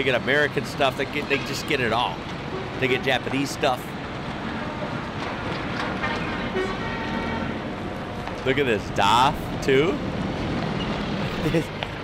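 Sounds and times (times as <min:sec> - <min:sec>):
heavy truck engines: 0:00.0 - 0:12.0
truck horn steady tone: 0:06.0 - 0:07.6.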